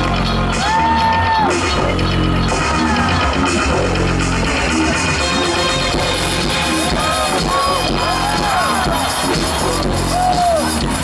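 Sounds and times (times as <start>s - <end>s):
live electronic music: 0.0s - 11.0s.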